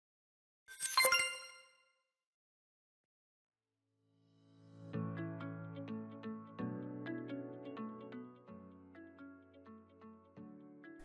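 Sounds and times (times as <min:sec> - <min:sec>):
bright logo chime: 0:00.8 - 0:01.8.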